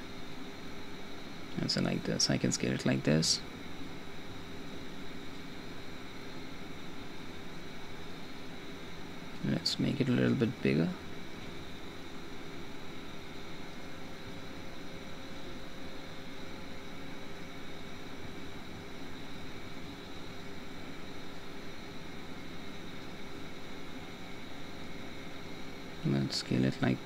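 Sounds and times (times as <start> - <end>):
faint hum: 0.0 - 27.0.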